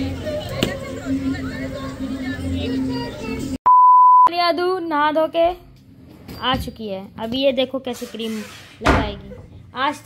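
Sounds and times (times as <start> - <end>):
short electronic beep: 3.7 - 4.3.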